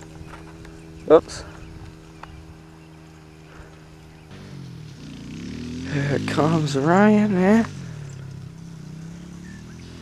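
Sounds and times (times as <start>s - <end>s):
engine running and revving: 0.0s - 10.0s.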